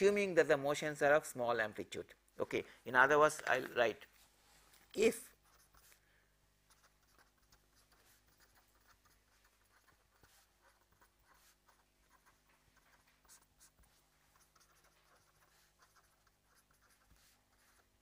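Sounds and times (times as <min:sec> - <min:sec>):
pen scratching on paper: 0:05.4 - 0:06.0, 0:06.7 - 0:18.0.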